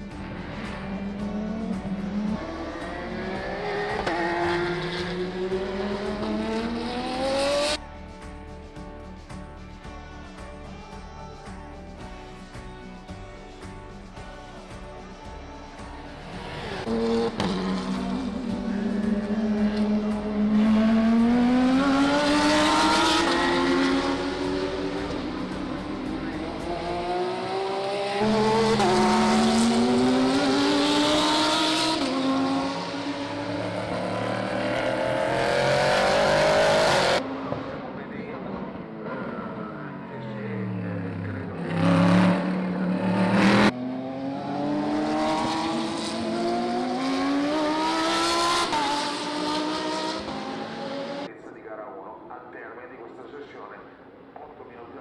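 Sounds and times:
race car engines accelerating: 0:00.0 - 0:07.8, 0:16.2 - 0:51.4.

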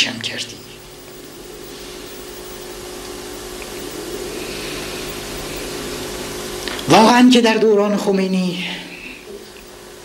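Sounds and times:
background hum and hiss: 0:00.0 - 0:10.0.

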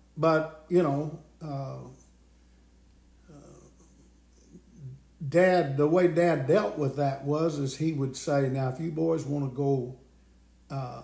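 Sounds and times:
man saying uh: 0:00.2 - 0:02.0, 0:04.8 - 0:09.9, 0:10.7 - 0:11.0.

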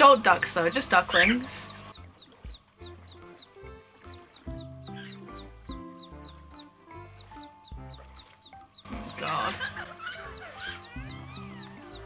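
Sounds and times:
background music with bass line: 0:02.0 - 0:12.0.

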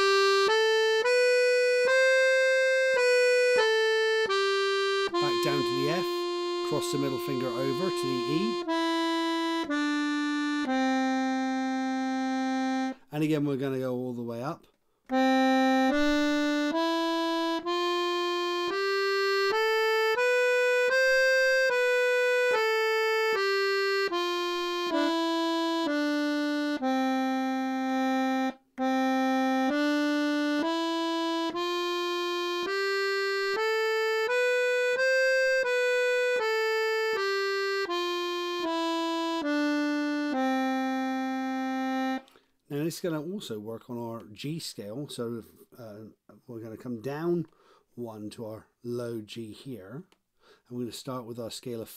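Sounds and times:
accordion playing a scale: 0:00.0 - 0:13.6, 0:15.1 - 0:42.9.

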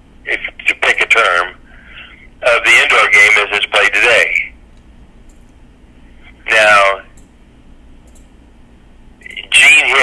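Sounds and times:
man talking over telephone: 0:00.2 - 0:01.6, 0:02.4 - 0:04.6, 0:06.3 - 0:07.2, 0:09.2 - 0:10.0.

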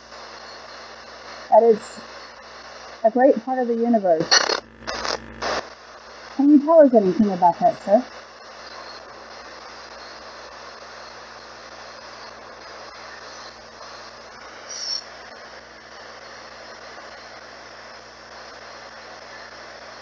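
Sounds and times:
radio static hiss: 0:00.0 - 0:20.0.

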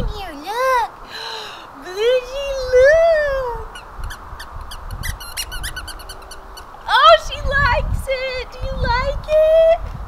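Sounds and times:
woman exclaiming: 0:01.8 - 0:03.7, 0:06.9 - 0:09.8
dog toy squeaker squeaking: 0:03.7 - 0:06.7.

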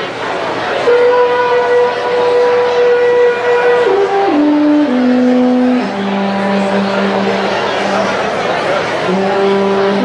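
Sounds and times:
alphorn held notes: 0:00.8 - 0:10.0.

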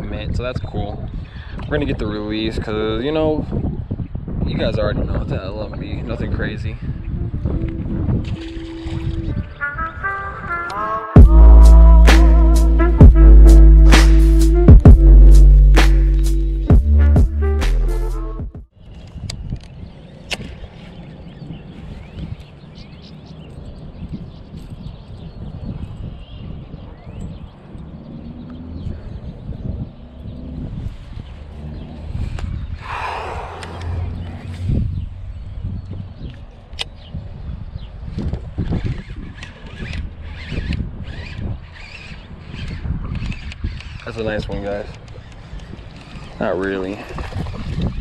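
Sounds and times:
wind rumbling on microphone: 0:00.0 - 0:11.9, 0:18.7 - 0:48.0.

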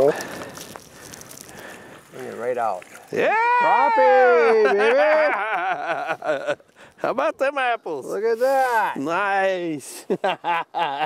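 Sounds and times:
handling and movement on snow: 0:00.0 - 0:04.7, 0:07.9 - 0:10.1
person exclaiming: 0:03.2 - 0:05.8.

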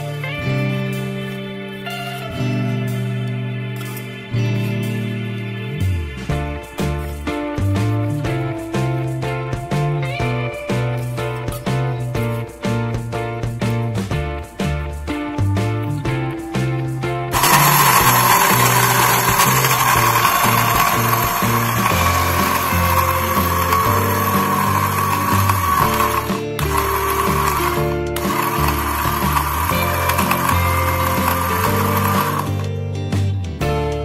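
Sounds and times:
blender grinding cement: 0:17.3 - 0:32.7.

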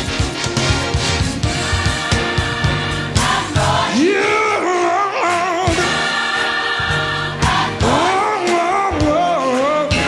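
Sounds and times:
band accompaniment: 0:00.0 - 0:10.0
gospel choir singing: 0:01.3 - 0:10.0.

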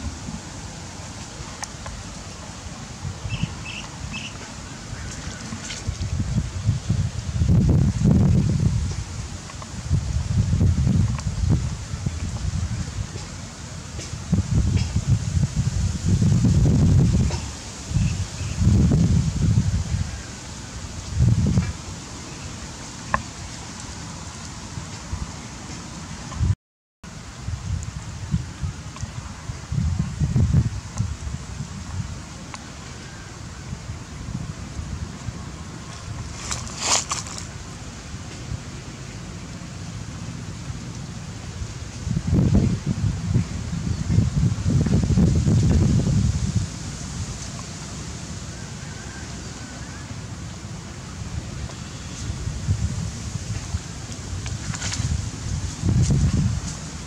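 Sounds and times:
leaves rustling: 0:00.0 - 0:26.4, 0:27.1 - 0:57.0
wind buffeting microphone: 0:00.0 - 0:26.6, 0:27.2 - 0:37.6, 0:41.5 - 0:49.6, 0:51.1 - 0:57.0.

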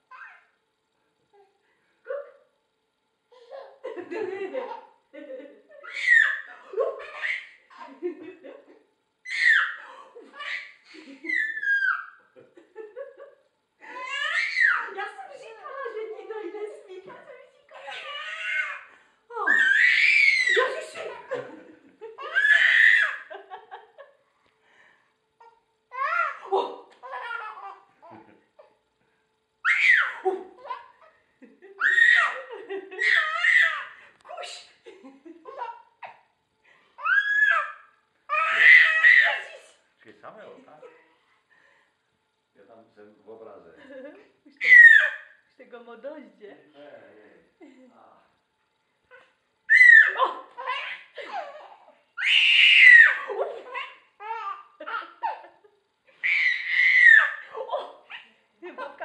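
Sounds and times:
baby squealing and laughing: 0:05.8 - 0:07.9, 0:09.3 - 0:12.3, 0:13.9 - 0:14.9, 0:17.8 - 0:21.3, 0:22.2 - 0:23.3, 0:25.9 - 0:27.8, 0:29.6 - 0:31.0, 0:31.8 - 0:34.6, 0:37.0 - 0:39.7, 0:44.6 - 0:45.3, 0:49.2 - 0:55.4, 0:56.2 - 0:58.2.

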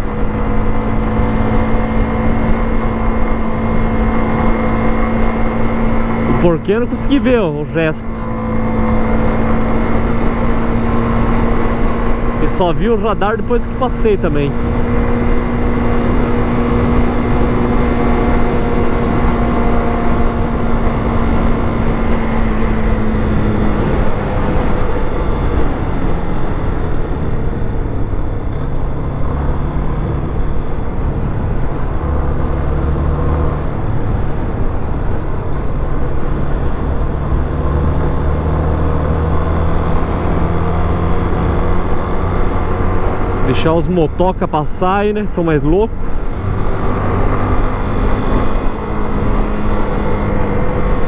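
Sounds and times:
motorcycle engine running: 0:00.0 - 0:33.0.

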